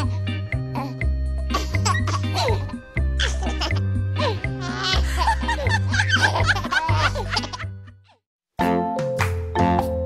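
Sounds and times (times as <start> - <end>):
bouncy background music: 0.0 - 10.0
cartoon babies giggling: 1.5 - 8.2.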